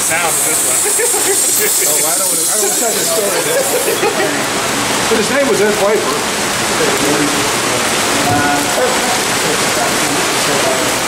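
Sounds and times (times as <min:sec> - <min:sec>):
faint voices: 0:00.0 - 0:11.0
loud steady rushing noise: 0:00.0 - 0:11.0.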